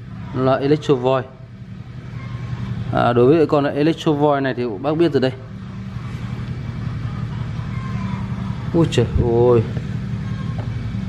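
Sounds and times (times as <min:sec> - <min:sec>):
motor droning: 0:00.0 - 0:11.0.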